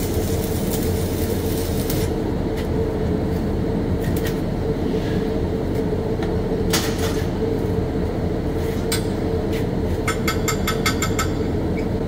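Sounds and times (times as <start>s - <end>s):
ventilation drone: 0.0s - 12.0s.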